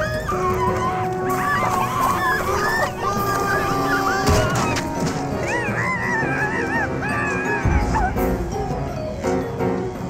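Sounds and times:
cartoon background music: 0.0s - 10.0s
squeaky cartoon vocal cries: 1.4s - 8.1s.

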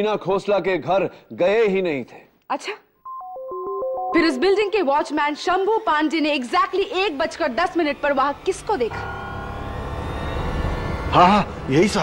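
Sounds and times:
sustained synthesizer chord: 7.5s - 12.0s.

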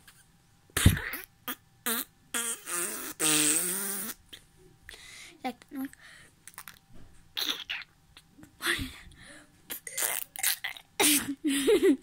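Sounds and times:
child blowing raspberries: 0.8s - 4.2s.

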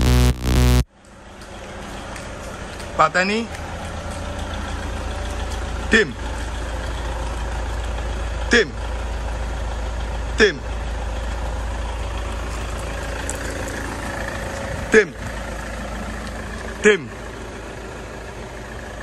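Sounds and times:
short sounds dropping in pitch: 0.0s - 0.8s
diesel engine idling: 0.0s - 19.0s.

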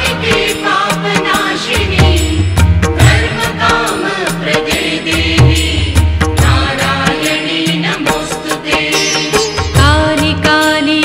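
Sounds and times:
percussion strokes: 0.0s - 11.0s
woman singing melodic chant: 6.5s - 11.0s.

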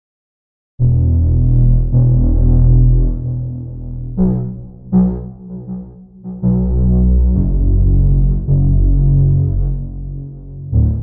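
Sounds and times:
distorted synth bass line: 0.8s - 11.0s.

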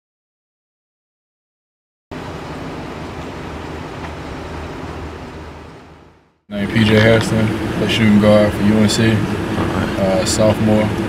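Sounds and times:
vehicle cabin road and engine noise: 2.1s - 11.0s.

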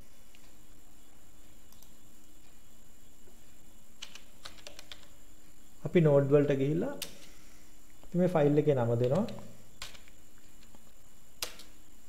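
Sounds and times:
keyboard typing: 4.0s - 5.2s.

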